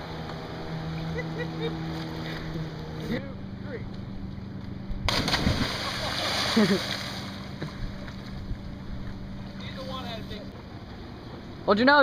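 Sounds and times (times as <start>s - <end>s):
people laughing: 0.9s - 2.4s, 5.8s - 7.8s
splash into water: 5.1s - 8.3s
water splashing: 5.1s - 8.4s.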